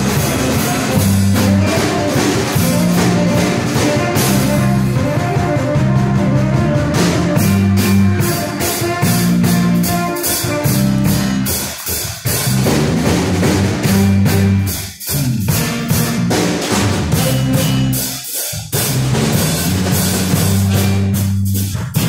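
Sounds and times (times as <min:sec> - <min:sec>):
drum kit beat: 0:00.0 - 0:22.0
electric bass line: 0:00.0 - 0:22.0
electric keyboard: 0:00.0 - 0:22.0.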